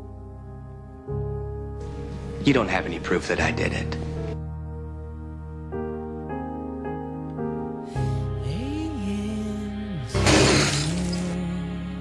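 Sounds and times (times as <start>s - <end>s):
slow background music: 0.0s - 12.0s
glass shattering: 10.2s - 11.2s.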